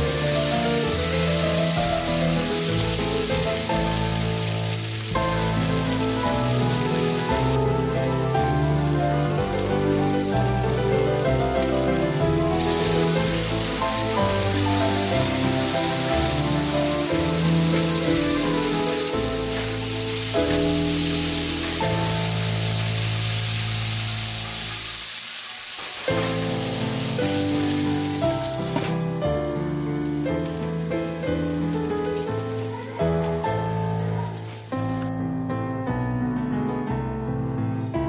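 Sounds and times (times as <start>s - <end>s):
banana slices sizzling in a pan: 0.0s - 35.1s
piano background music: 0.0s - 38.0s.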